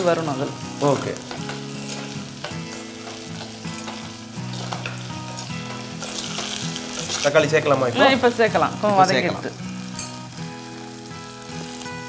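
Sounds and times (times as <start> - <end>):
vegetables sizzling in hot oil: 0.0 - 12.0
metal spatula stirring: 1.2 - 7.4.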